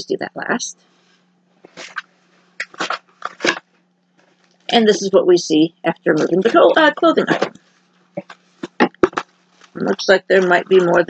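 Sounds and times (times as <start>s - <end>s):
faint low hum: 0.0s - 11.0s
fabric and packaging rustling: 0.8s - 5.0s, 6.1s - 11.0s.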